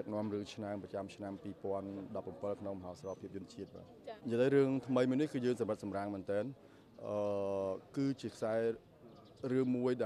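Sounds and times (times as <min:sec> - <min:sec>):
man speaking: 0:00.0 - 0:08.8, 0:09.4 - 0:10.0.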